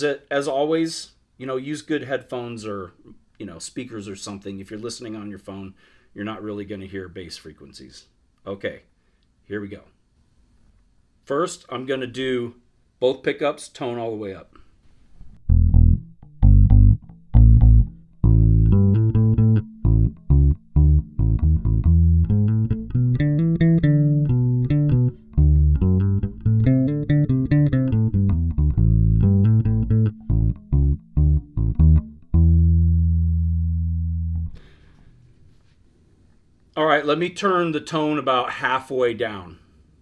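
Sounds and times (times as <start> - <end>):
bass guitar plucked notes: 15.4 - 34.8.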